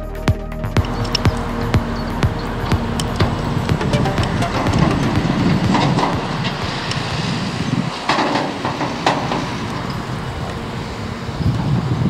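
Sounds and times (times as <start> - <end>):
tractor engine rumbling: 0.0 - 12.0
trailer rattling and clanking: 0.6 - 12.0.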